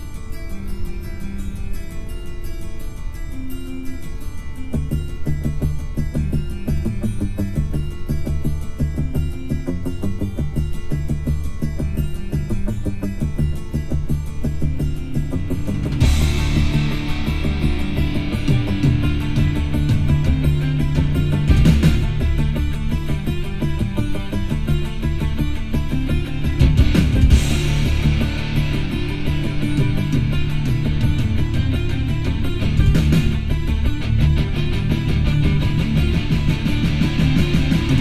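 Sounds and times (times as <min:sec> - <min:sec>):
rock music through car speakers: 0:04.2 - 0:38.0.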